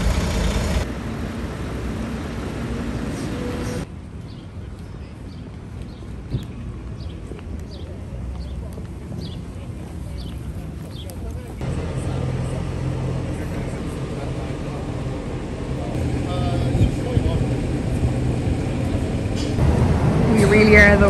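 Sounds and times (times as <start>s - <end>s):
traffic rumble: 0.0s - 21.0s
people's voices: 4.5s - 21.0s.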